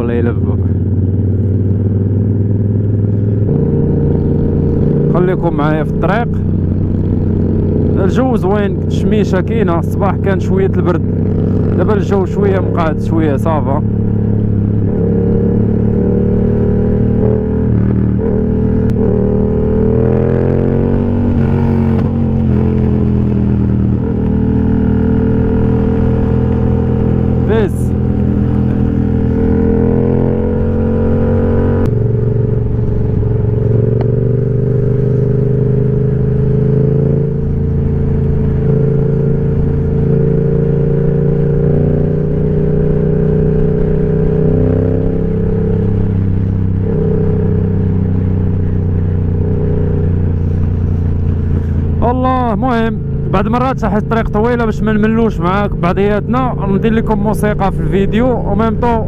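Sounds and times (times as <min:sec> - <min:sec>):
motorcycle engine accelerating: 0:00.0 - 0:59.0.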